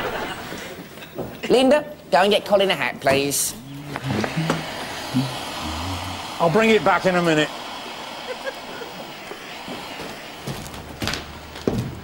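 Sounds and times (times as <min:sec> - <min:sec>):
audience laughing: 0:07.6 - 0:10.6.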